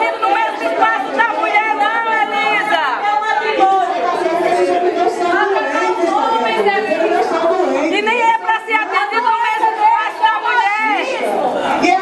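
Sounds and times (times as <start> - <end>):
woman talking: 0.0 - 4.0, 7.9 - 11.3
background chatter: 0.0 - 12.0.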